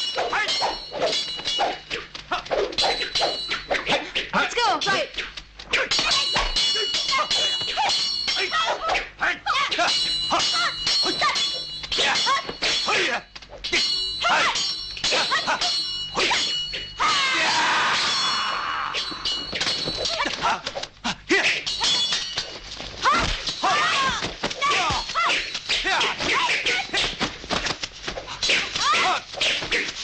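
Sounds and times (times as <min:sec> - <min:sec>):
strikes and weapon clashes: 0:00.0 - 0:30.0
fighters shouting and grunting: 0:00.1 - 0:05.1, 0:05.7 - 0:22.0, 0:23.0 - 0:27.2, 0:28.3 - 0:30.0.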